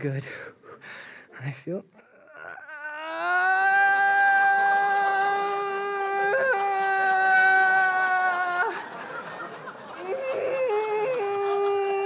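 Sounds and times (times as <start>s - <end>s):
man's high-pitched cry of pain: 2.0s - 8.8s.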